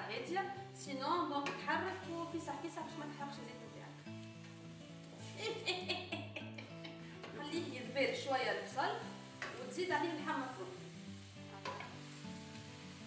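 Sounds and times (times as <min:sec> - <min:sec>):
background music: 0:00.0 - 0:13.0
onion sizzling in frying pan: 0:00.0 - 0:13.0.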